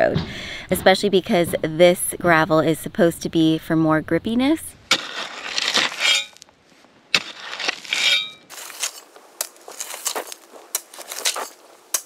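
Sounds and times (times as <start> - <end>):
gravel crunching: 4.7 - 12.0
shovel scraping into gravel: 4.9 - 6.5, 7.1 - 12.0.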